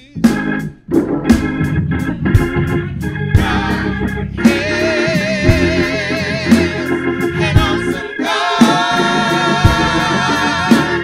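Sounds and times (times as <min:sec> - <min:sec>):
electric organ chords: 0:00.0 - 0:11.0
percussion hits: 0:00.3 - 0:04.8
choir singing: 0:03.4 - 0:11.0.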